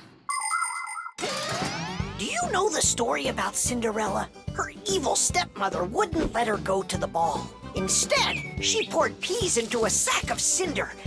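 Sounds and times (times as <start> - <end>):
music: 1.2 - 11.0.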